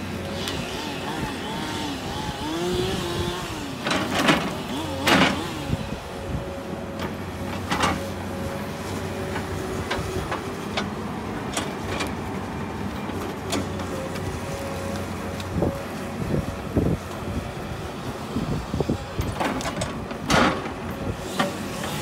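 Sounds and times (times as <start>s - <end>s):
excavator diesel engine droning: 0.0s - 22.0s
knocks and clanks: 19.2s - 20.8s.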